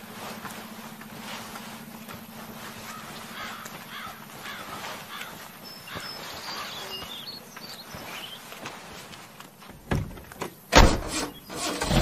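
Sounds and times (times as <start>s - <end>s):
outdoor background noise: 0.0s - 12.0s
crows cawing: 2.5s - 7.1s.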